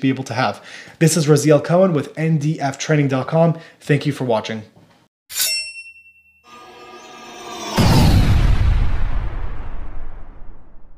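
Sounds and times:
metallic ding: 0:05.3 - 0:07.5
swelling sound effect: 0:06.5 - 0:10.9.

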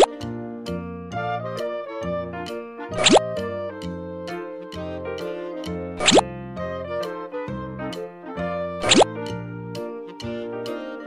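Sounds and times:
cheerful children's music: 0:00.0 - 0:11.0
rising swoop sound effect: 0:02.9 - 0:03.2.

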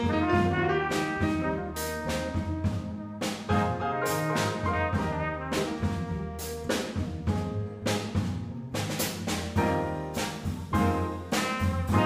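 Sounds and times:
trumpet: 0:00.0 - 0:07.3, 0:10.1 - 0:12.0
acoustic piano: 0:00.0 - 0:12.0
drum kit cymbal and drum strokes: 0:00.0 - 0:12.0
upright bass: 0:00.0 - 0:12.0.

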